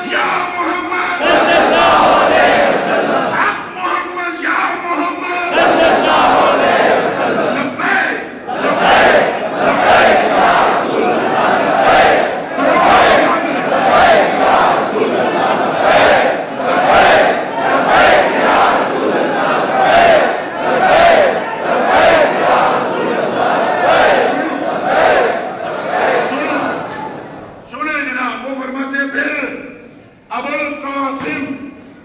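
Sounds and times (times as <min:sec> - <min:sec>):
crowd of men chanting: 0:01.2 - 0:03.4, 0:05.5 - 0:07.8, 0:08.4 - 0:26.9.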